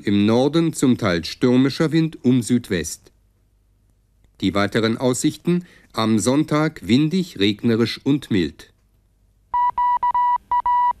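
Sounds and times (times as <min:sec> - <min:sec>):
electronic beeps: 0:09.6 - 0:11.0.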